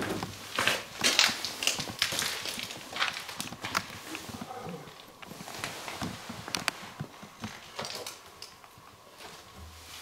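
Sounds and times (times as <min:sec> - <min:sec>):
shuffling steps on gritty floor: 0:00.0 - 0:08.0.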